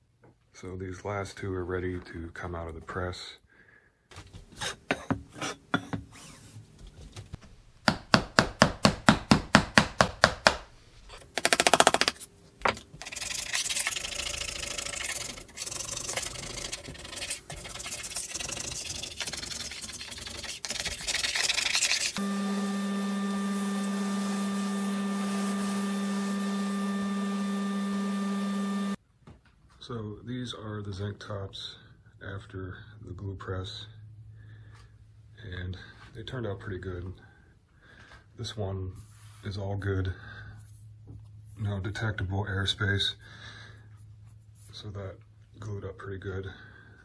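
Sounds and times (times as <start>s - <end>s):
steady machine hum: 22.2s - 29.0s.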